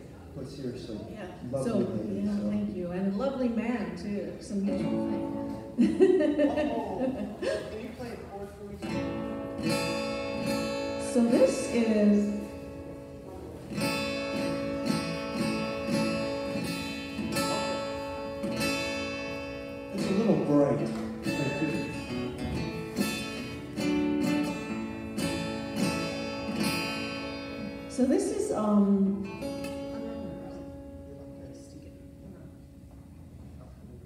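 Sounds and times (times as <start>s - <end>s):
acoustic guitar strumming chords: 4.6s - 5.9s, 8.8s - 33.3s.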